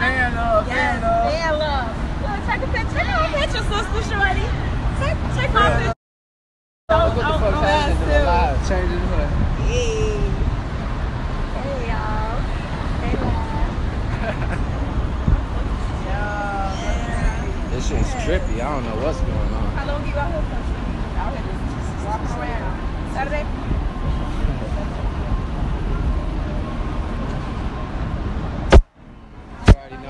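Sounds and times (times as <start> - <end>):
traffic rumble: 0.0 - 6.0, 6.9 - 30.0.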